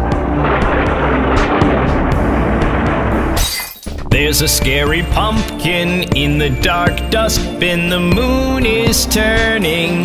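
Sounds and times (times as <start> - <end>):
low background music: 0.0 - 10.0
cartoon crackling and shattering debris: 0.4 - 5.4.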